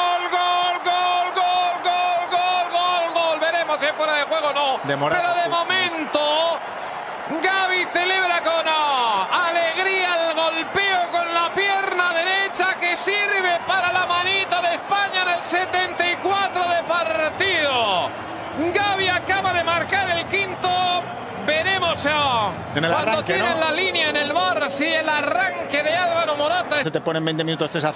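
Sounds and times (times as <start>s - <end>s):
faint crowd: 0.0s - 27.9s
man commentating excitedly: 0.0s - 27.9s.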